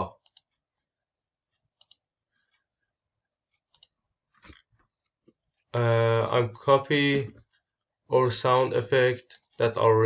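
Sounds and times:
computer mouse clicks: 0:00.2 - 0:00.6, 0:01.8 - 0:02.0, 0:03.5 - 0:05.4.

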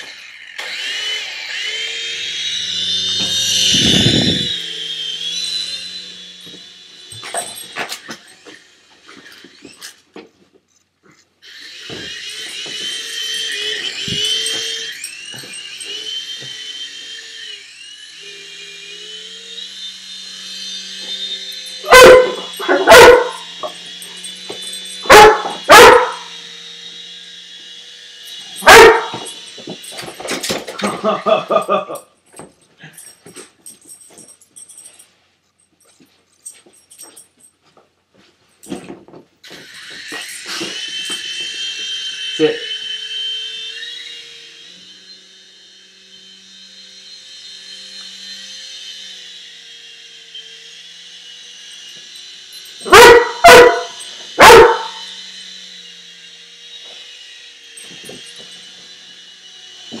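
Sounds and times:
toy helicopter motor whine: 0:00.0 - 0:37.5, 0:38.6 - 1:00.0
puppy barking: 0:21.8 - 0:23.5, 0:25.1 - 0:26.3, 0:28.6 - 0:29.3, 0:52.9 - 0:55.0.

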